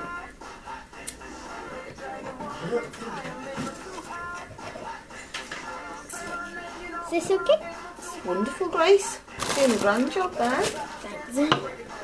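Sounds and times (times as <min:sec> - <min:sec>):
pop music from a radio: 0:00.0 - 0:12.0.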